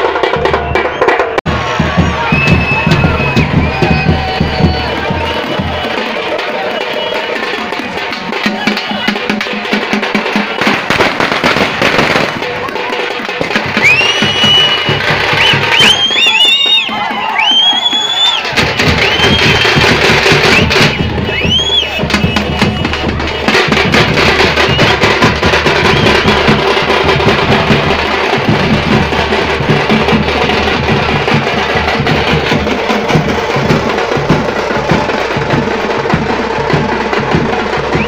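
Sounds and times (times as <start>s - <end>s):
drums beating fast rhythm: 0.0s - 38.0s
shrill whistles: 0.4s - 1.4s, 2.0s - 6.0s, 6.6s - 7.5s, 13.7s - 26.6s.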